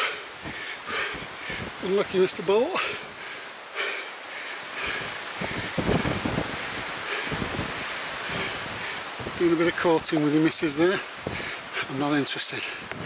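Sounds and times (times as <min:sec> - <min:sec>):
long grass rustling: 0:00.0 - 0:13.0
wind buffeting microphone: 0:00.0 - 0:13.0.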